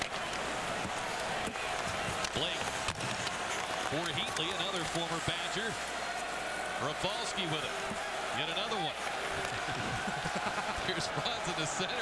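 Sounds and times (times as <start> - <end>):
commentator speaking: 10.9 - 12.0.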